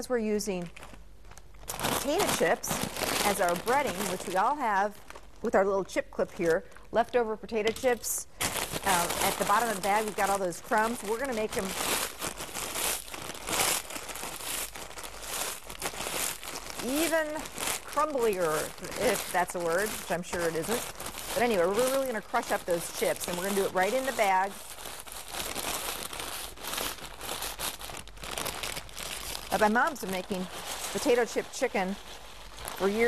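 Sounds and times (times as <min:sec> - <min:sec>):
chip bag crinkling: 0:00.0 - 0:33.0.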